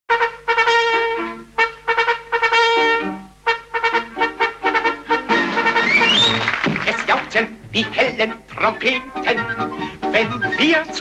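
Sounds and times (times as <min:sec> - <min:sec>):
brass fanfare with trumpets: 0:00.1 - 0:08.4.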